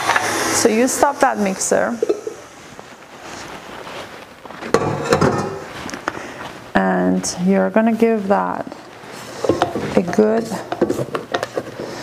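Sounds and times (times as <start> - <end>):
knocks and clunks of mixer bowl: 4.7 - 5.6.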